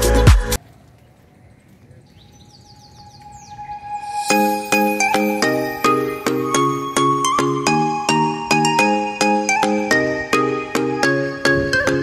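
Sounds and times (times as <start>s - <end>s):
background music: 0.0s - 0.6s, 3.6s - 12.0s
falling bird chirps: 1.2s - 6.2s.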